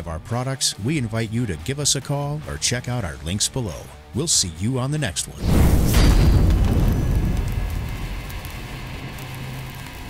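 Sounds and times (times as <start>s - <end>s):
flames crackling: 5.0s - 10.0s
low rumble: 5.4s - 10.0s.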